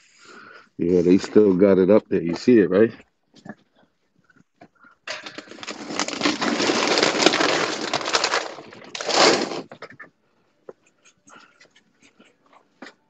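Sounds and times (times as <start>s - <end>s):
crackly rustling and scraping: 2.3s - 10.1s.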